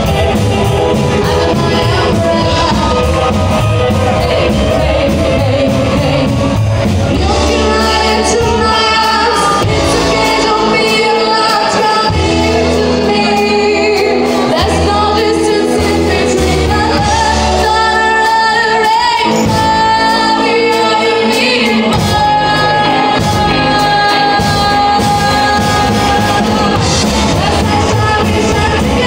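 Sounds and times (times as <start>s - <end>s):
rockabilly band playing: 0.0s - 29.0s
woman singing: 0.0s - 29.0s.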